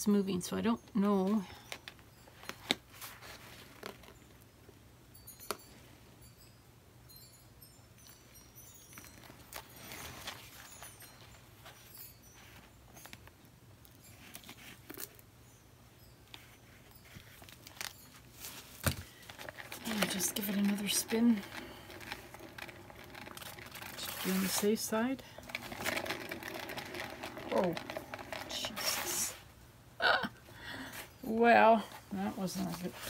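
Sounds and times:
soft rustles: 1.3s - 4.4s, 8.8s - 13.3s, 16.3s - 29.6s, 30.8s - 33.0s.

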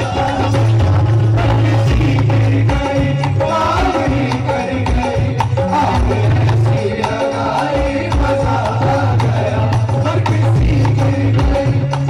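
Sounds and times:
person singing into microphone: 0.0s - 12.0s
regular drum beat: 0.0s - 12.0s
tabla playing: 0.0s - 12.0s.

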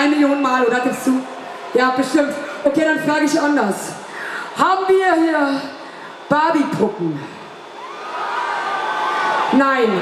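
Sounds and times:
crowd cheering and screaming: 0.0s - 2.6s, 7.6s - 10.0s
voice from the stage: 0.0s - 7.7s.

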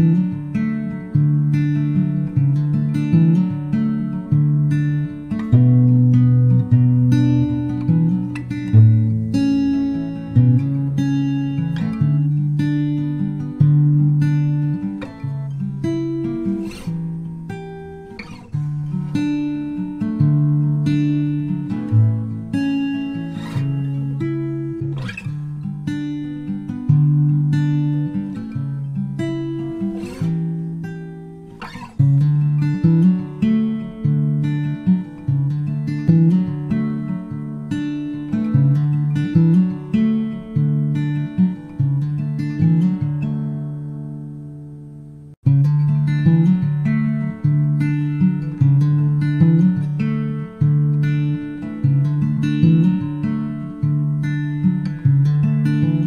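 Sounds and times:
acoustic guitar folk instrumental: 0.0s - 56.0s.

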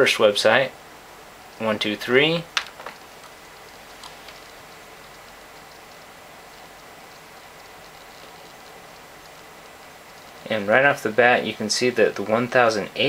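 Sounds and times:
steady background hiss: 0.0s - 13.0s
faint clicks: 2.5s - 10.5s.

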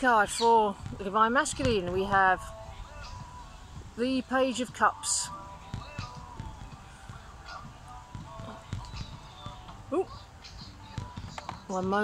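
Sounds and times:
faint bird calls: 7.1s - 7.8s, 8.4s - 12.0s.

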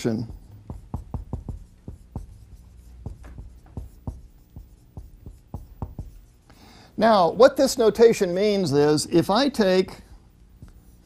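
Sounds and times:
pen tapping and scratching on paper: 0.0s - 6.3s
faint low hum: 0.0s - 11.0s.

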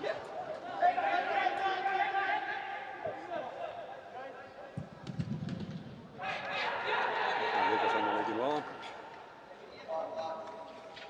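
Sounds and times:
players shouting in echoing hall: 0.0s - 4.7s, 6.1s - 10.7s.

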